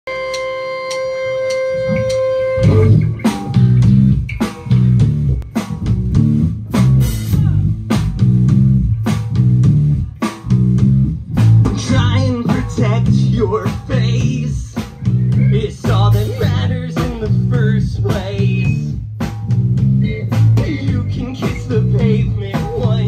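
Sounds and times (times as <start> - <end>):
busy bass line: 0.1 - 23.0
rock band playing: 0.1 - 23.0.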